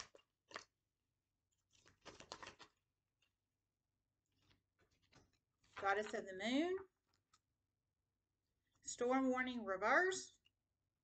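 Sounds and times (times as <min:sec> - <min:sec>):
cards rustling and flicking: 0:01.6 - 0:02.9
woman speaking: 0:05.8 - 0:06.9, 0:08.8 - 0:10.4.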